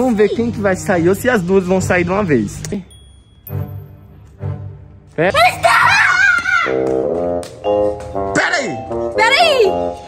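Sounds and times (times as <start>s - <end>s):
background music: 0.0s - 10.0s
woman screaming: 5.4s - 6.8s.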